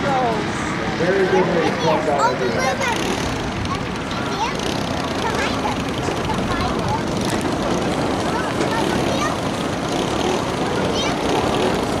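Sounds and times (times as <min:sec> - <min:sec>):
kart engines running: 0:00.0 - 0:12.0
people talking: 0:00.0 - 0:12.0.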